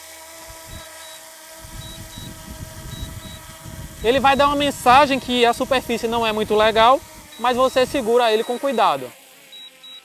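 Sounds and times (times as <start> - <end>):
drone propellers whining: 0.4 - 10.0
wind rumble on microphone: 0.5 - 0.9, 1.6 - 8.0.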